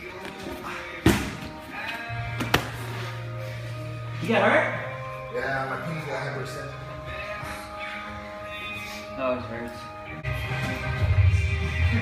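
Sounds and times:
background music: 0:00.0 - 0:12.0
body slapping mat: 0:02.4 - 0:02.8.

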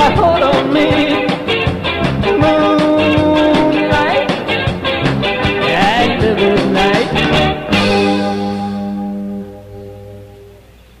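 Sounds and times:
rock band final chord ringing: 0:00.0 - 0:10.7.

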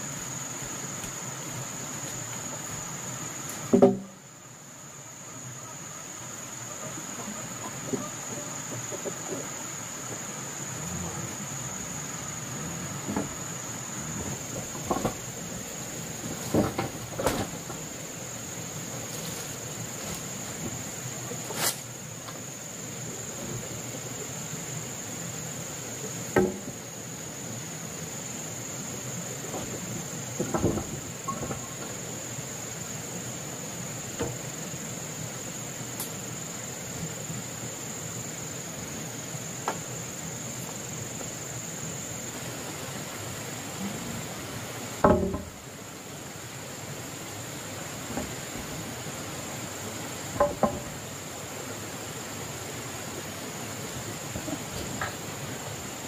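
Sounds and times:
insects droning: 0:00.0 - 0:56.0
knocks: 0:03.7 - 0:04.2, 0:26.4 - 0:26.8, 0:30.4 - 0:31.8, 0:45.0 - 0:45.6, 0:50.4 - 0:51.0.

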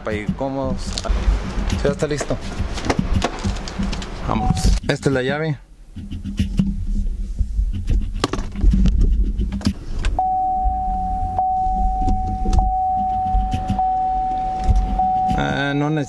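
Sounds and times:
clicks and handling noises: 0:00.9 - 0:04.8
dashboard electronic tone: 0:04.3 - 0:04.8, 0:10.2 - 0:16.0
low rumble: 0:10.2 - 0:15.6.

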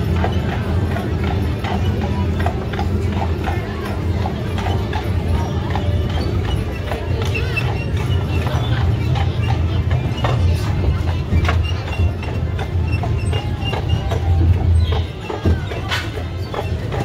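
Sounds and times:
hooves clip-clopping on brick: 0:00.0 - 0:17.0.

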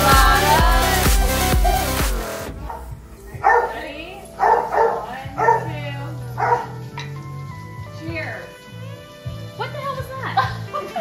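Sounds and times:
background music: 0:00.0 - 0:11.0
dog barking: 0:02.6 - 0:03.8, 0:04.4 - 0:06.8.

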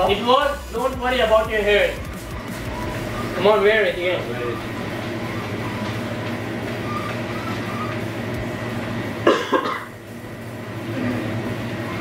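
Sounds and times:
steady low hum: 0:00.0 - 0:12.0
person coughing: 0:09.3 - 0:09.9.

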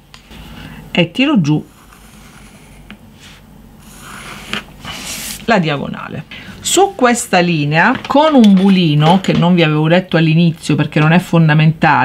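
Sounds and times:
pencil scratching on card: 0:01.6 - 0:05.4.

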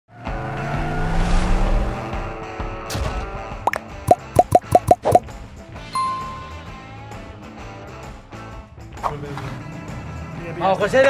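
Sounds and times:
background music: 0:01.8 - 0:11.0
cartoon plop sound effects: 0:03.7 - 0:05.2.

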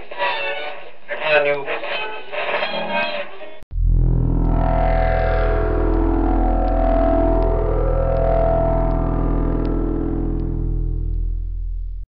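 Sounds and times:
droning low music chords: 0:03.7 - 0:12.0.

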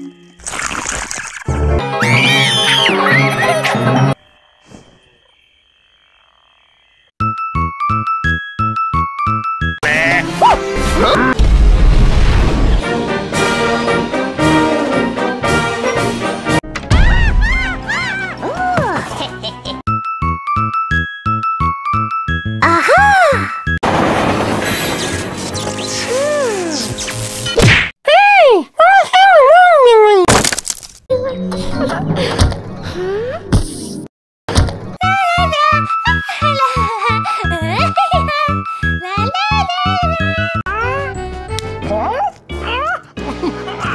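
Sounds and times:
frogs croaking: 0:04.1 - 0:07.2
loud crash: 0:10.8 - 0:12.8, 0:23.8 - 0:25.8
cartoon whack: 0:27.6 - 0:27.9
high-pitched cartoon voice: 0:28.1 - 0:30.3, 0:35.0 - 0:41.2, 0:41.9 - 0:43.1.

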